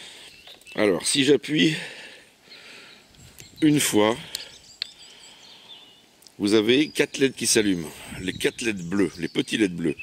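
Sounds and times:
faint bird chirps: 0.1 - 1.7, 2.4 - 10.0.

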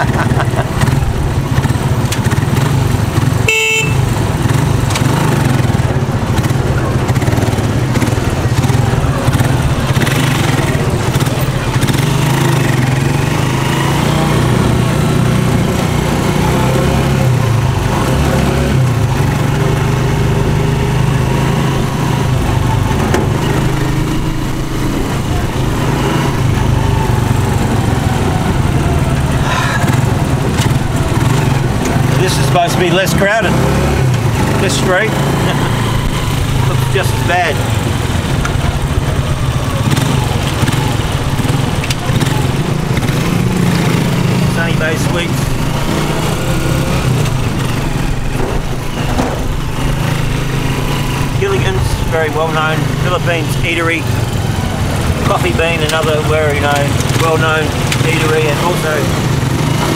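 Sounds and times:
small motorcycle engine running: 0.0 - 59.9
vehicle horn toot: 3.4 - 4.3.

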